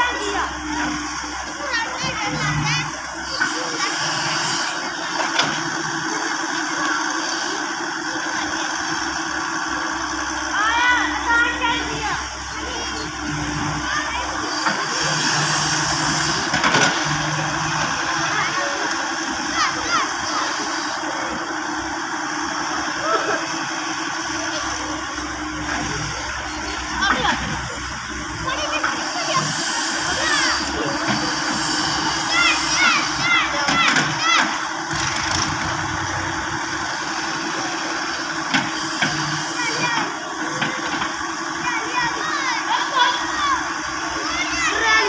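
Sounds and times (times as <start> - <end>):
excavator diesel engine running: 0.0 - 45.0.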